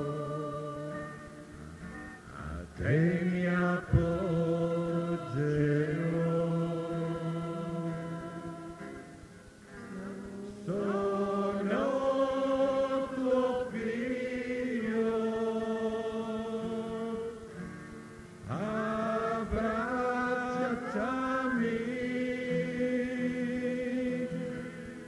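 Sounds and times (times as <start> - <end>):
voices singing slow chant: 0.0 - 25.0.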